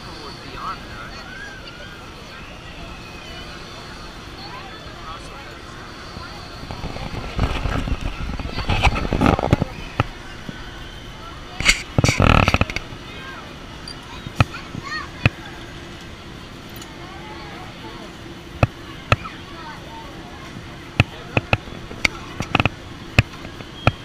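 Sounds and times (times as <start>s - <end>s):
loud rough rushes of noise: 0.0s - 24.0s
voices: 0.0s - 24.0s.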